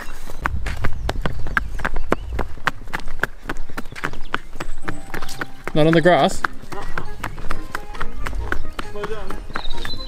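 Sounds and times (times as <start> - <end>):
hooves clip-clopping on bricks: 0.0 - 10.0
people's footsteps: 0.0 - 10.0.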